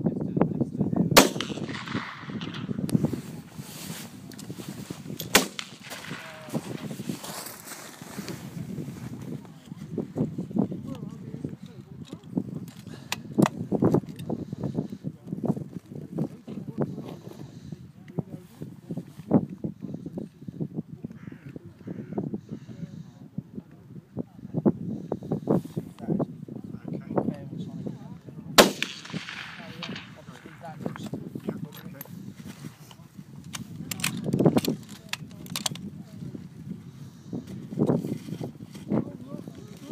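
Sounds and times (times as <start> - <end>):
gusty low rumble: 0.6 - 19.8
rifle shot: 1.2 - 2.9, 5.2 - 6.7, 28.6 - 30.6
crow cawing: 21.2 - 22.2.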